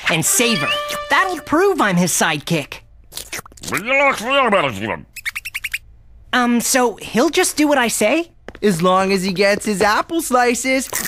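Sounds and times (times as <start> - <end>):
short high chirps: 0.4 - 1.9
cartoon hamster squeals: 5.1 - 5.8.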